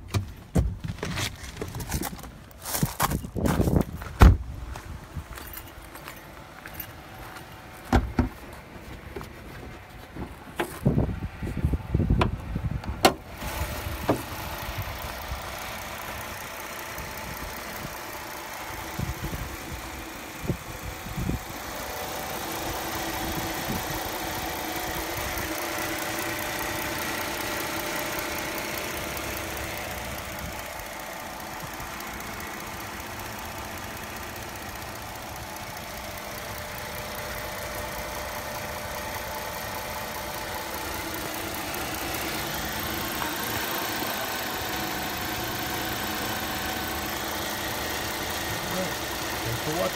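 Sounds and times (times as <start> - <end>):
car engine idling: 0.0 - 49.9.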